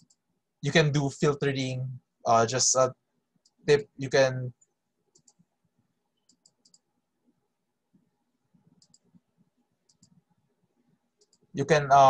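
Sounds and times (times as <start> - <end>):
computer mouse clicks: 0.0 - 0.2, 5.1 - 5.4, 6.2 - 6.9, 8.7 - 9.2, 9.9 - 10.2, 11.2 - 11.5.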